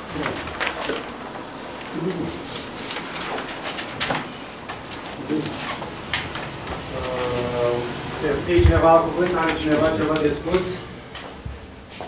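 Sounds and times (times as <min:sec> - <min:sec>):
paper rustling: 0:00.0 - 0:11.4
man's drawn-out hesitation sound: 0:06.9 - 0:11.0.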